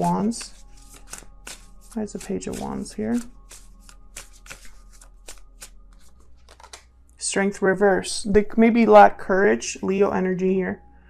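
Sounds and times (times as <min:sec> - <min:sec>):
cards being shuffled: 0:00.0 - 0:06.9.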